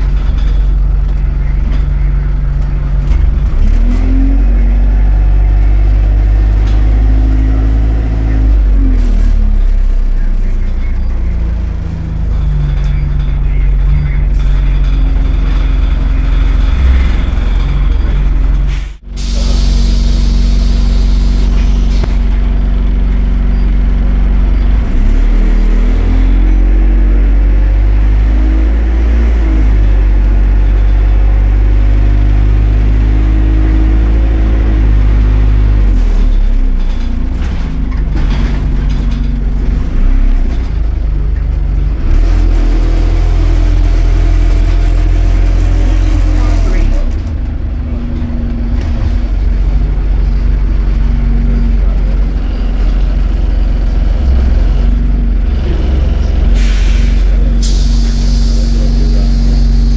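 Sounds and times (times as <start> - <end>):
bus engine and drivetrain: 0.0 - 59.9
hissing air: 18.7 - 22.1, 56.6 - 59.8.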